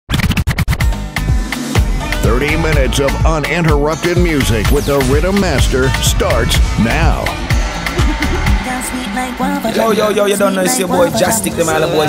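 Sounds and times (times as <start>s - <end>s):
record scratch stabs: 0.1s - 1.0s, 2.4s - 10.0s
music bed with beats: 0.2s - 11.7s
heavy bass hits: 1.2s - 9.6s.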